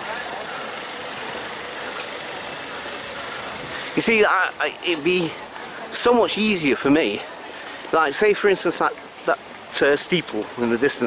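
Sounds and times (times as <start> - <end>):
faint voices of passers-by: 0.0 - 11.0
road traffic hum: 0.0 - 11.0.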